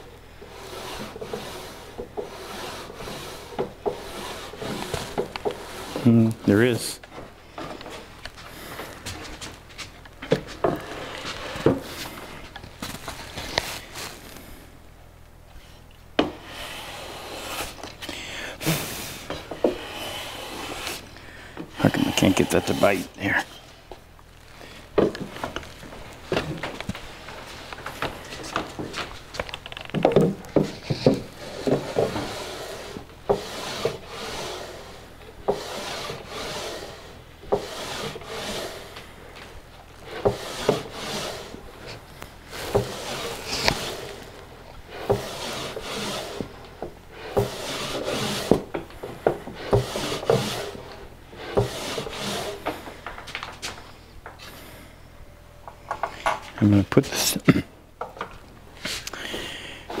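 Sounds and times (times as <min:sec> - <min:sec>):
wooden drawer sliding: 0:00.4 - 0:09.4, 0:10.2 - 0:14.2, 0:16.2 - 0:23.3, 0:24.9 - 0:54.6.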